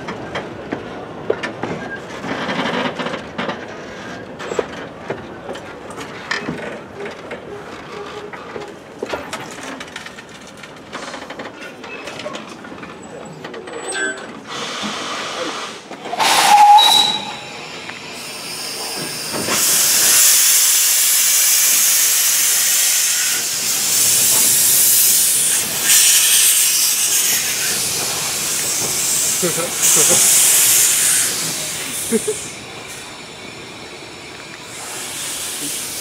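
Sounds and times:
steam locomotive hissing steam: 14.5s - 36.0s.

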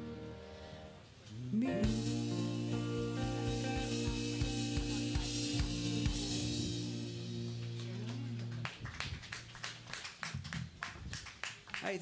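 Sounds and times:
low humming note: 1.5s - 8.7s
audience clapping: 7.4s - 12.0s.

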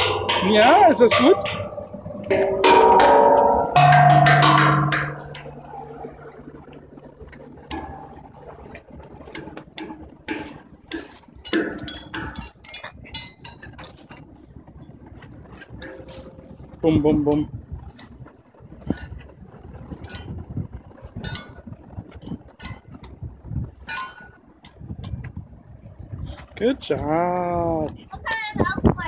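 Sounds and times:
tongue drum notes ringing: 0.0s - 12.8s, 15.8s - 17.5s.

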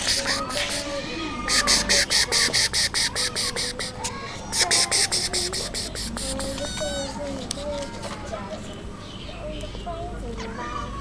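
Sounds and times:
rapid high chirping: 0.0s - 7.4s
soft gliding high-pitched calls: 4.6s - 7.2s.

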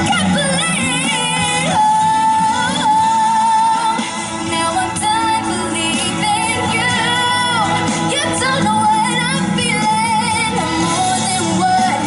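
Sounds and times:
pop ballad accompaniment: 0.0s - 12.0s
woman singing with vibrato: 0.0s - 12.0s.

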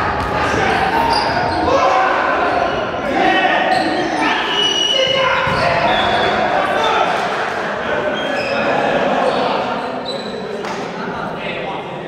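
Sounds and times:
voices in sports hall: 0.0s - 12.0s.

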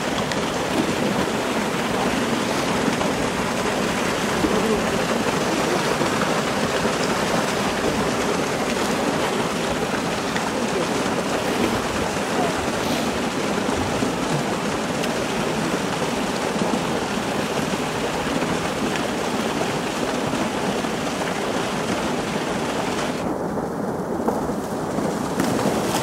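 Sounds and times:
running water rushing: 0.0s - 23.3s.

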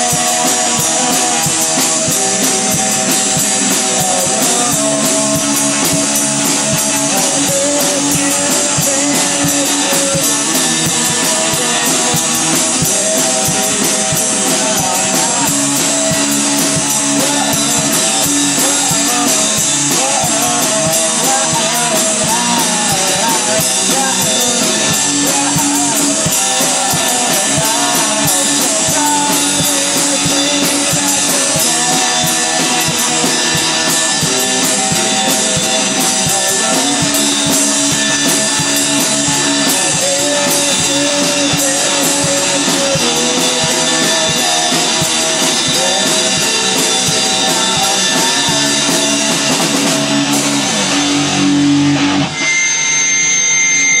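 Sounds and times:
held high tone: 0.0s - 54.0s
rock music: 0.0s - 54.0s.

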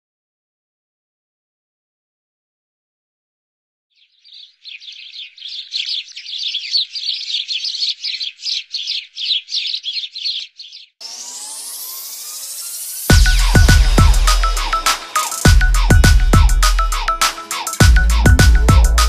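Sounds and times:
birds chirping: 3.9s - 19.0s
rising electronic sweep: 11.0s - 19.0s.

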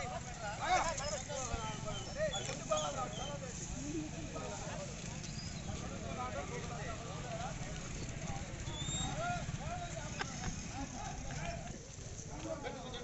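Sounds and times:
men talking over one another: 0.0s - 13.0s.

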